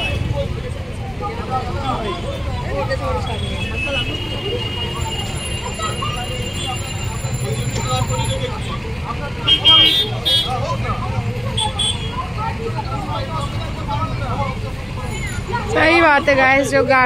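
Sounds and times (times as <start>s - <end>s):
crowd of people arguing: 0.0s - 17.0s
engines idling: 0.0s - 17.0s
vehicle horn honking: 9.5s - 10.6s, 11.6s - 12.2s.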